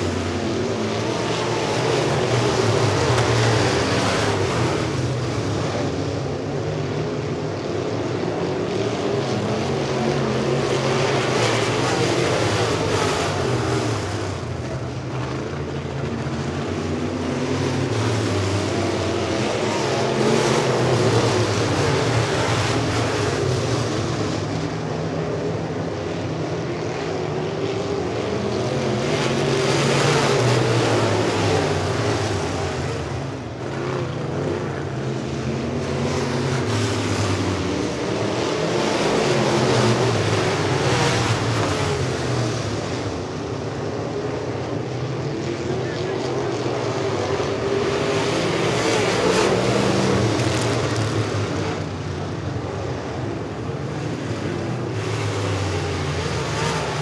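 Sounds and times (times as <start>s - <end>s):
race car engines passing by: 0.0s - 57.0s.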